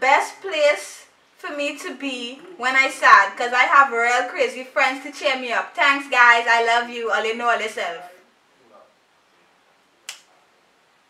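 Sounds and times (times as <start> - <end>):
finger snap: 10.0 - 10.3.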